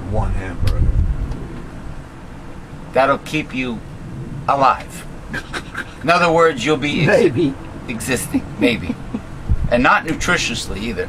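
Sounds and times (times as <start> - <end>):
handheld microphone handling rumble: 0.0 - 2.0, 9.4 - 10.3
faint steady background noise: 0.0 - 11.0.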